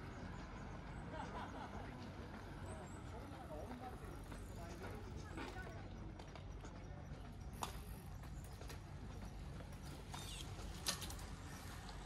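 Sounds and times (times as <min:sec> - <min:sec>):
faint voices of passers-by: 0:00.0 - 0:12.0
low street rumble: 0:00.0 - 0:12.0.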